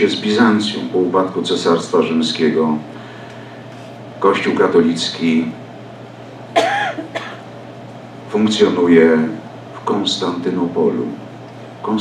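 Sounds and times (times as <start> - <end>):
man coughing: 6.5 - 7.5.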